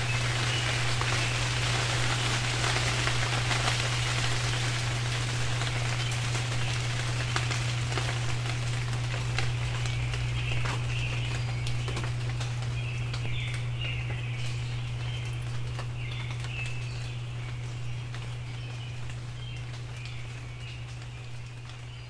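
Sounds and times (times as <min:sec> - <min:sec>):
rain dripping and pattering: 0:00.0 - 0:22.0
steady low hum: 0:00.0 - 0:22.0.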